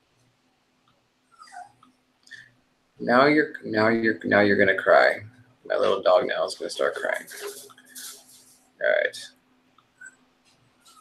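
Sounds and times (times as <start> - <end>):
small dog whimpering: 1.3 - 1.9.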